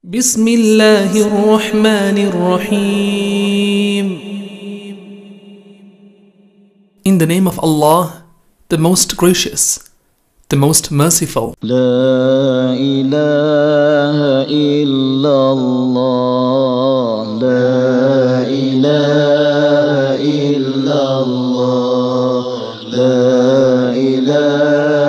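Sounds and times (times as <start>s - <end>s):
vocal chanting in held notes: 0.0s - 8.2s, 11.3s - 25.0s.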